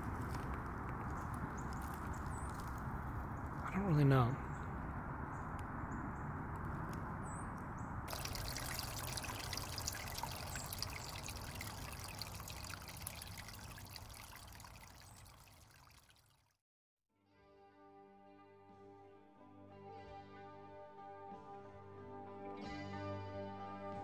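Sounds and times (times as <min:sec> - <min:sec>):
outdoor background hiss: 0:08.1 - 0:15.9.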